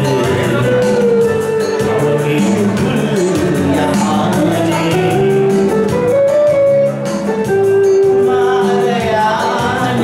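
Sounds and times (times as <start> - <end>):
keyboard melody with accompaniment: 0.0 - 10.0.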